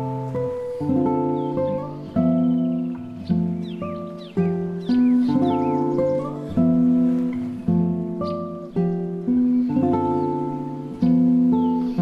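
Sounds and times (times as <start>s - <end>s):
classical guitar chords: 0.0s - 12.0s.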